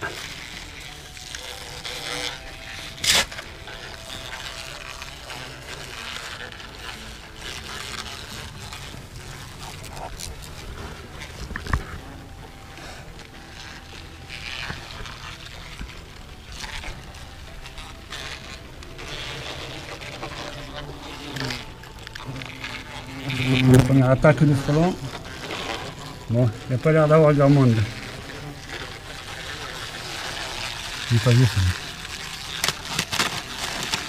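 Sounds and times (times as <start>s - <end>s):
low outdoor background noise: 0.0s - 34.0s.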